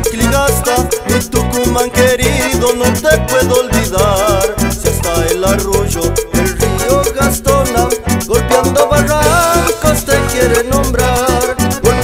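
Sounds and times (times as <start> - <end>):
upbeat latin band music: 0.0 - 12.0.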